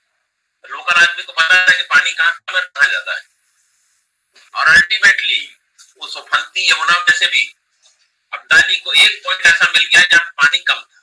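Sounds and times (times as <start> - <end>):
man lecturing over video call: 0.7 - 3.3, 4.4 - 7.6, 8.3 - 11.0.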